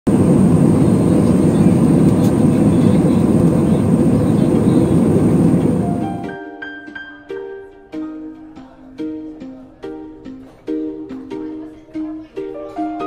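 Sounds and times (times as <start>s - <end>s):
jet engines and rushing air: 0.1s - 6.3s
thin high whine: 0.1s - 6.3s.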